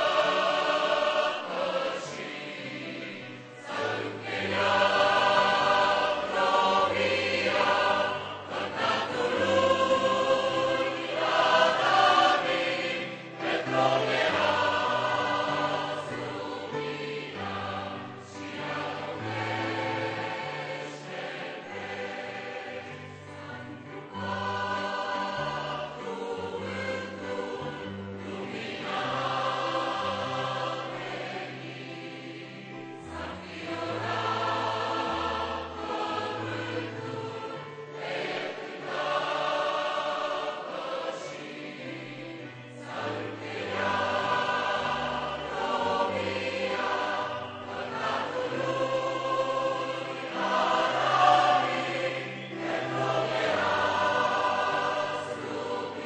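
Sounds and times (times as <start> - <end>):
mixed choir singing a hymn: 0.0 - 56.0.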